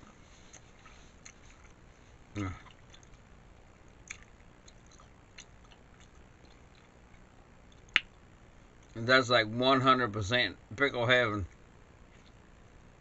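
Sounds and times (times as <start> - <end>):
close chewing: 0.0 - 3.3, 4.0 - 8.0
mouth clicks: 4.0 - 8.2.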